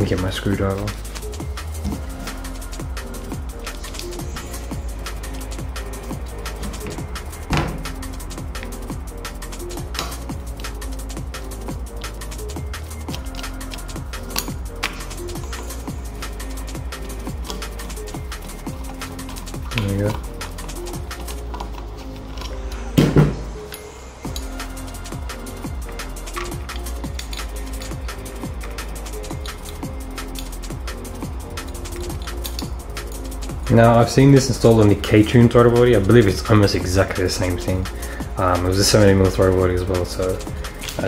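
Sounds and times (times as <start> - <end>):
electronic music with driving beat: 0.0 - 41.0.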